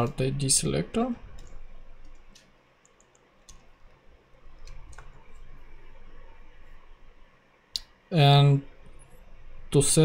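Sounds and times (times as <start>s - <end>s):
keyboard keys clicking: 1.4s - 3.8s.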